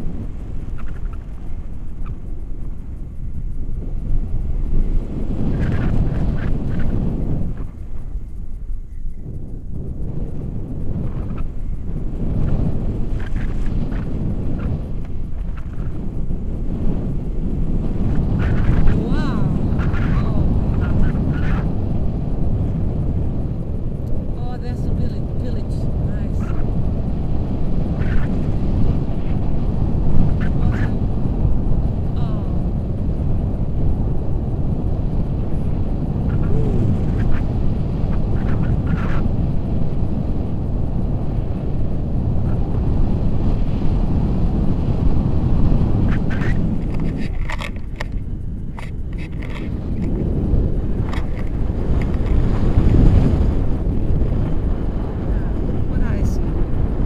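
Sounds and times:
wind rushing over microphone: 0.0 - 57.0
harness clicks and rustles: 46.3 - 50.2.

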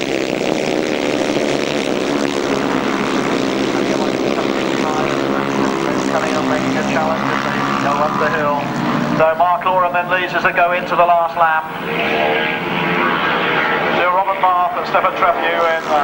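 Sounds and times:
motorcycle engines racing: 0.0 - 16.0.

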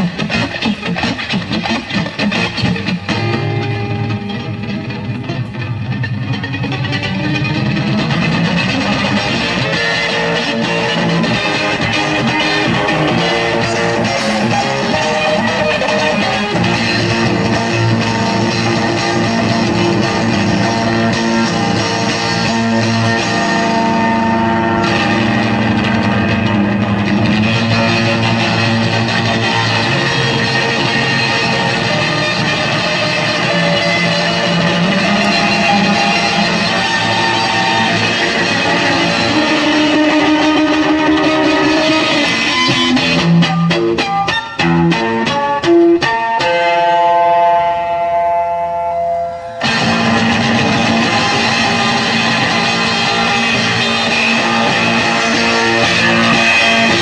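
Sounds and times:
blues rock band playing: 0.0 - 57.0
electric guitar lead line: 0.0 - 57.0.

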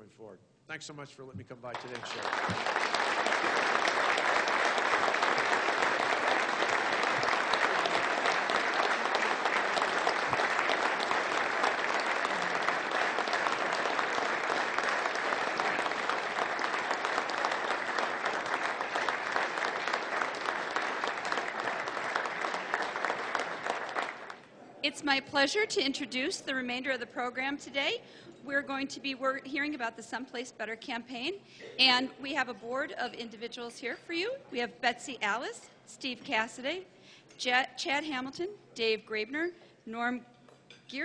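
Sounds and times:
large audience applauding: 1.7 - 24.4.

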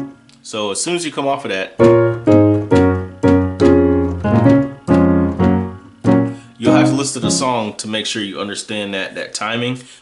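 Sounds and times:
piano chords: 1.8 - 7.8.

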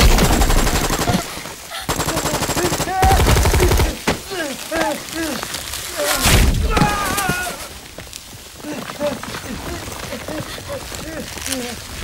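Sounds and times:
rapid automatic gunfire: 0.0 - 4.0.

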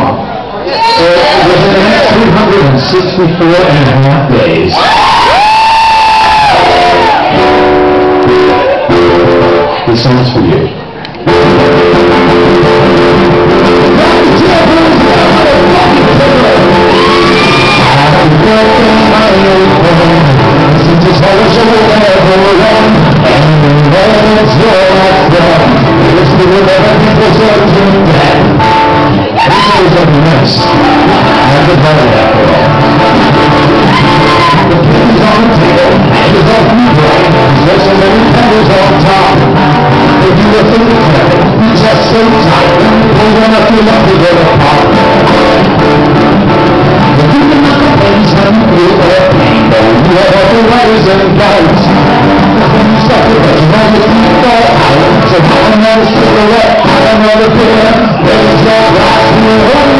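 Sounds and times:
man singing into a microphone: 0.8 - 7.6, 11.4 - 59.9
person whooping: 4.7 - 7.4, 16.8 - 18.0, 29.4 - 29.9, 33.8 - 34.7
acoustic guitar strumming: 5.9 - 10.5, 11.2 - 59.9.

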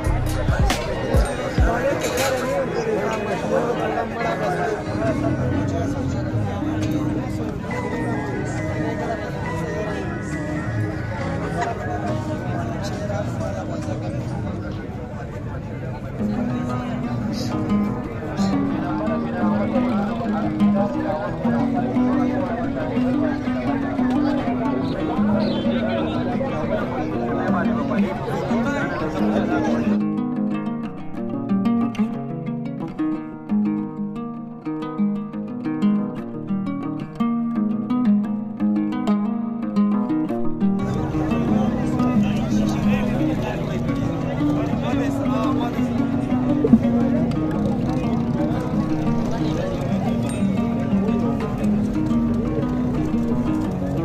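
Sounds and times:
market voices: 0.0 - 30.0, 40.8 - 54.0
plucked-string music: 0.0 - 54.0.

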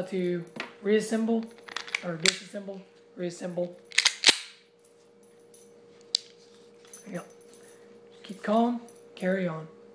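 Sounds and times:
faint steady hum: 0.0 - 9.9
pistol action metallic click: 3.9 - 4.6.

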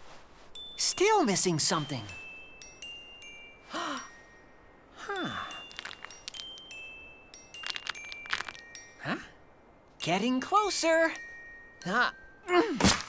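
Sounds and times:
chime and glockenspiel tinkles: 0.5 - 12.8.

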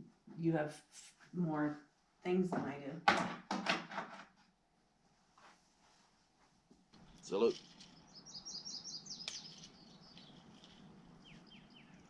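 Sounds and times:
faint birdsong: 7.0 - 12.0.

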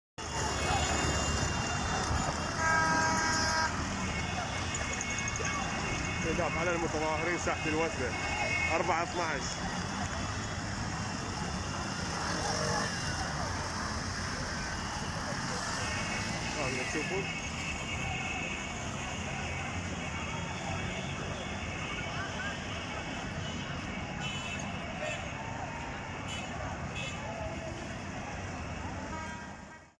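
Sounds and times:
distant crowd voices and shouts: 0.2 - 29.6
auto-rickshaw engines driving past: 0.2 - 29.7
street noise: 0.2 - 30.0
vehicle horn blast: 1.5 - 6.8.

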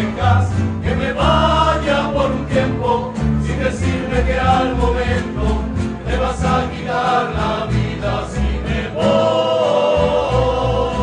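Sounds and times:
double bass: 0.0 - 11.0
men singing: 0.0 - 11.0
strummed acoustic guitars: 0.0 - 11.0.

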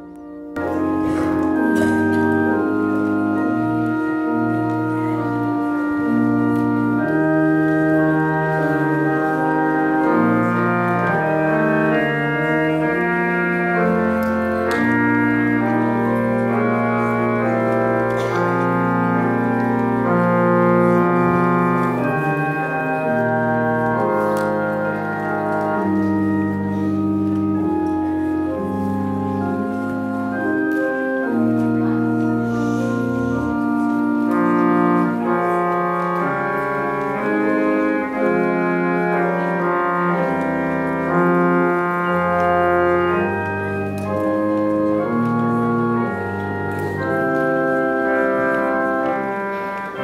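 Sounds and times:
pipe organ chords: 0.0 - 50.0.

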